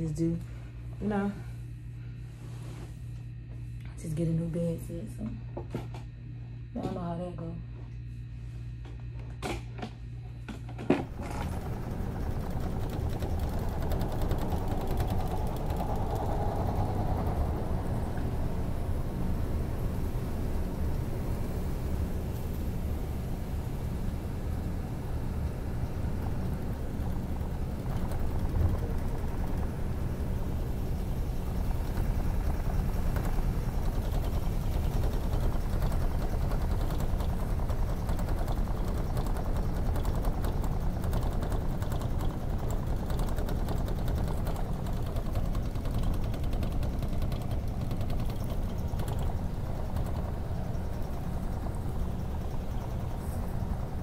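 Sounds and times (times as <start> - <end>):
light ticks and rattles: 11.1 - 54.0.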